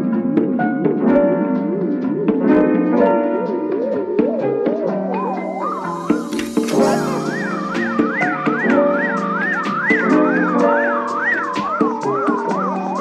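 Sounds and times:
held chords: 0.0 - 13.0
wailing siren in music: 0.0 - 13.0.

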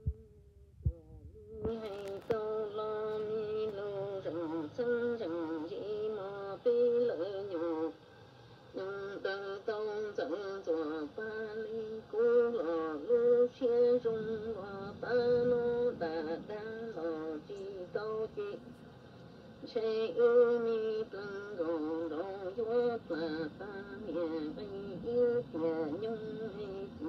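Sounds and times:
person singing with vibrato: 0.0 - 18.8, 19.6 - 27.0.

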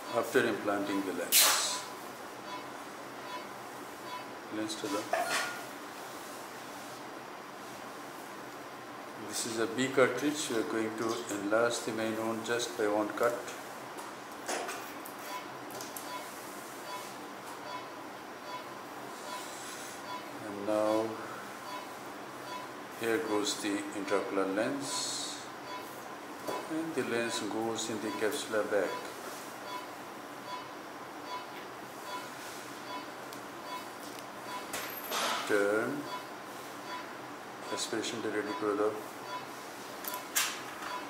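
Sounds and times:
short electronic beep: 25.6 - 25.9, 32.1 - 33.1.

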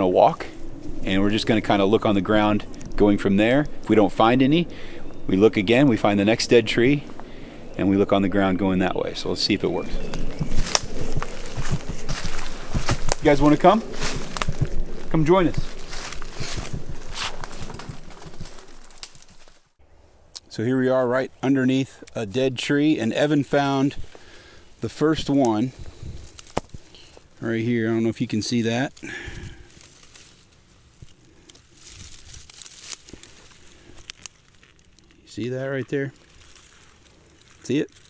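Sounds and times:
birds calling: 0.0 - 18.9, 22.8 - 28.4
footsteps crunching through undergrowth: 9.0 - 19.8, 23.4 - 38.0
small twig snaps: 10.1 - 11.4, 18.4 - 19.5, 26.2 - 26.8, 29.7 - 35.2.

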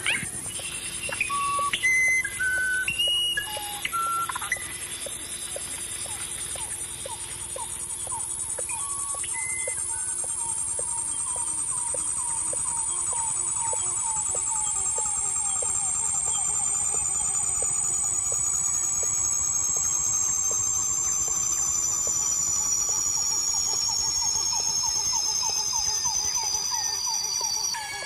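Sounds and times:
rapid falling chirp: 0.0 - 28.0
electronic tones gliding down: 9.0 - 28.0.

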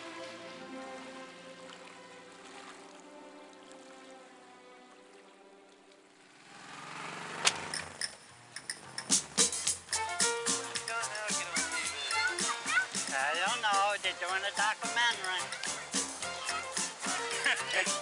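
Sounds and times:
background music of held chords: 8.7 - 18.0.

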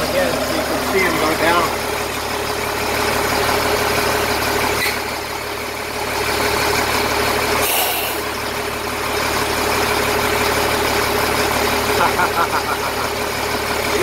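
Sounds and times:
diesel truck engine idling: 0.0 - 14.0
air hissing out: 7.6 - 8.2.

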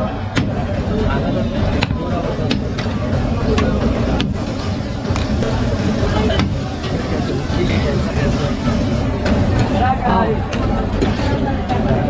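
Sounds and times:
voices talking: 0.0 - 12.0.

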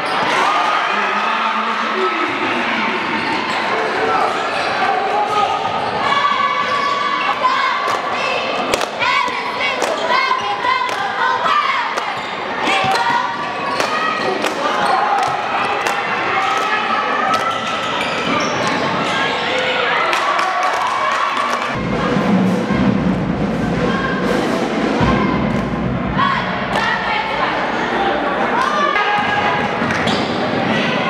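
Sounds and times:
overlapping voices: 7.7 - 17.6.

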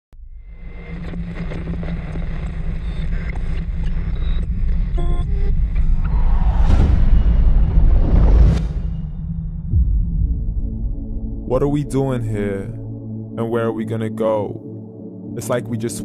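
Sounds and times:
deep bass rumble: 0.2 - 13.4
whoosh: 5.8 - 11.5.

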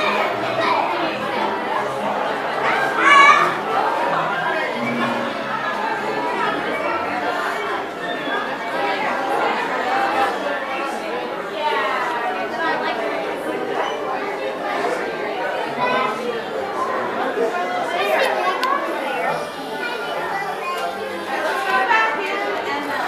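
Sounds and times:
crowd chatter: 0.0 - 23.0.

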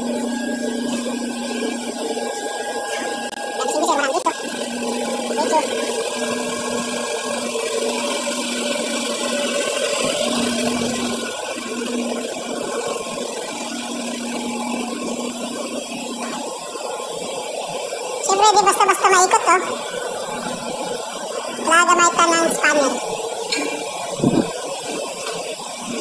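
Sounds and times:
machinery noise: 0.0 - 26.0
pulsing low hum: 18.2 - 26.0.

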